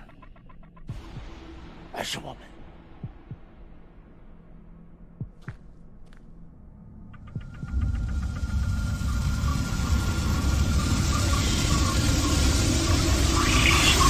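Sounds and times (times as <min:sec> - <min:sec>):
rushing flame noise: 0:08.1 - 0:14.0.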